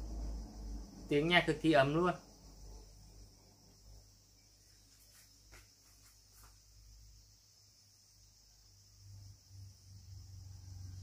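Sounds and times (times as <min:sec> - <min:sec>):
low hum: 0:00.0 - 0:01.3.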